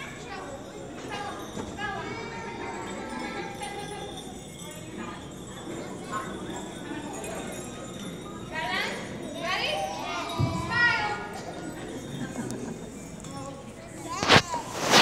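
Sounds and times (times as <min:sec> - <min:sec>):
young children's voices: 0:13.3 - 0:15.0.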